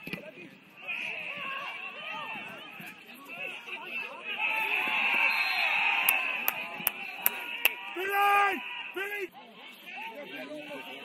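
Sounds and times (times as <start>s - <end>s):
people shouting: 4.2s - 9.3s
loud drawn-out shout: 4.3s - 9.3s
sharp claps: 6.0s - 7.8s.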